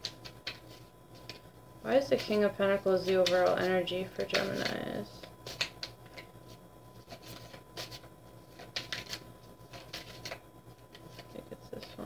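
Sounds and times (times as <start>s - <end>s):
cards being shuffled: 0.0s - 12.0s
crisp card slaps: 4.2s - 6.3s.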